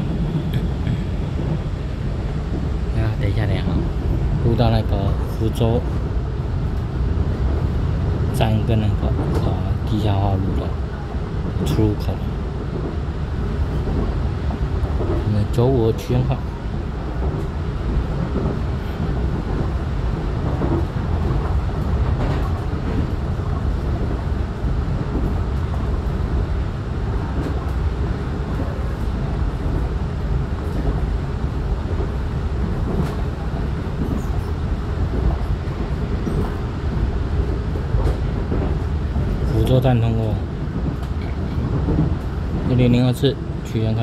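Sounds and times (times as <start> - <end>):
train wheels rumbling on rail: 0.0 - 44.0.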